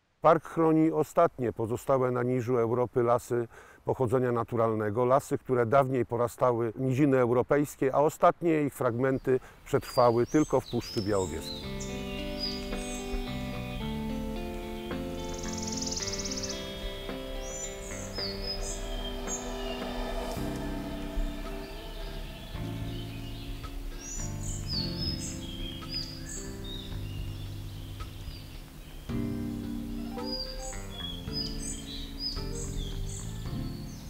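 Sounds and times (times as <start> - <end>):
high whistled birdsong phrases: 9.1 - 34.0
high buzzing bird trill: 10.8 - 34.0
soft sustained chord music: 11.0 - 34.0.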